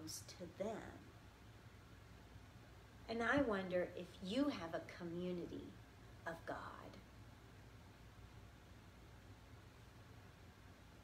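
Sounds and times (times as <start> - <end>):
woman speaking softly: 0.0 - 1.1, 3.1 - 7.1.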